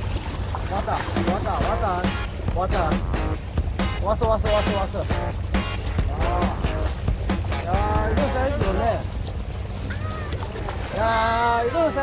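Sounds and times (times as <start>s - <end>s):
sea waves washing: 0.0s - 12.0s.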